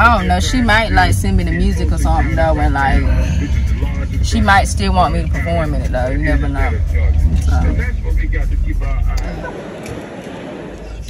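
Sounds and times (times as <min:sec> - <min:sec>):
person talking: 0:00.0 - 0:03.5, 0:04.2 - 0:06.8, 0:07.4 - 0:07.9
road rumble inside car: 0:00.0 - 0:09.9.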